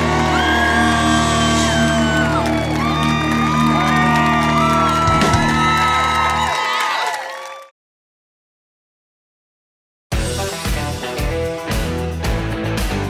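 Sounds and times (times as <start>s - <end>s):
electric guitars bending notes: 0.0s - 6.5s
country-rock band playing: 10.1s - 13.0s.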